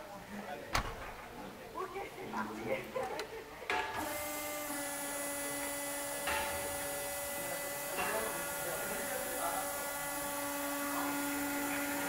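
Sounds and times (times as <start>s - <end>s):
electric motor whining: 4.0s - 12.0s.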